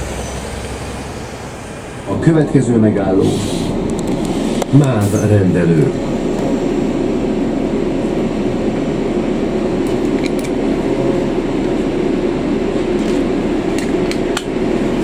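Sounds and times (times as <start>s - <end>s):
bus running and road noise: 0.0s - 15.0s.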